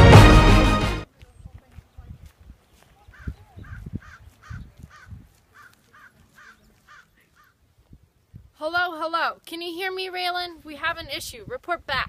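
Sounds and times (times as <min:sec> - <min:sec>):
bird calling: 0:02.6 - 0:07.6
wind thumps on microphone: 0:03.2 - 0:05.4.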